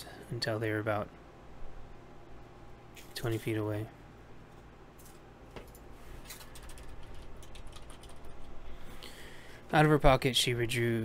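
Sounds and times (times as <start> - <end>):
computer keyboard key clicks: 6.3 - 8.4.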